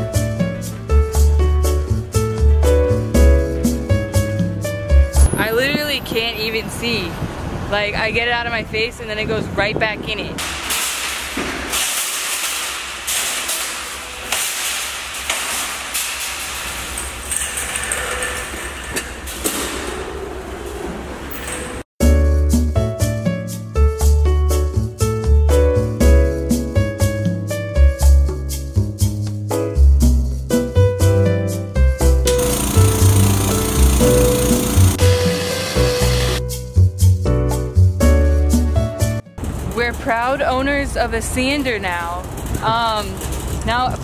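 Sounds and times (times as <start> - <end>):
background music: 0.0 - 5.7, 22.0 - 39.4
shopping cart rattling and clanking: 10.4 - 21.8, 32.4 - 36.3, 39.4 - 44.0.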